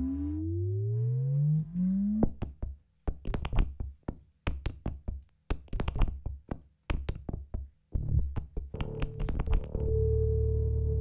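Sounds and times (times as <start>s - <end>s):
synthesizer rising pitch sweep: 0.0s - 2.3s.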